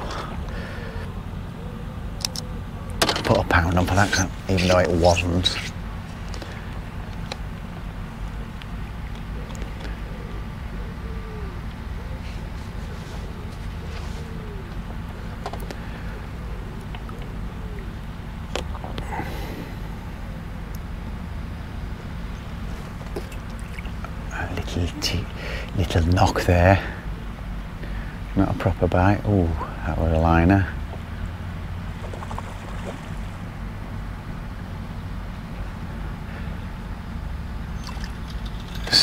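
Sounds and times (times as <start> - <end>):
low outdoor rumble: 0.0 - 39.0.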